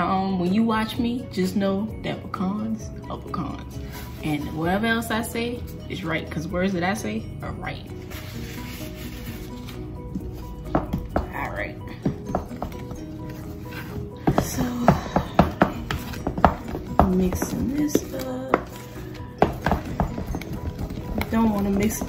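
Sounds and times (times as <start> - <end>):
quiet background music: 0.0 - 22.0
utensil scraping mixing bowl: 12.1 - 22.0.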